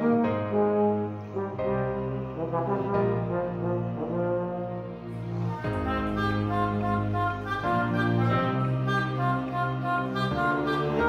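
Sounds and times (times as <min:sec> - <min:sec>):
brass ensemble playing slow song: 0:00.0 - 0:11.0.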